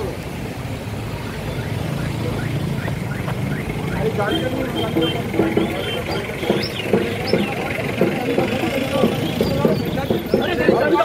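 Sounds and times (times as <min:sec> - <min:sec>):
motorcycle engine idling: 0:01.3 - 0:11.0.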